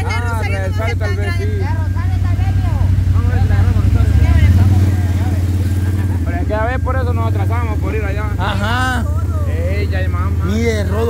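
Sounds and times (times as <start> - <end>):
quad bike engine running: 0.0 - 11.0
voices talking: 0.0 - 11.0.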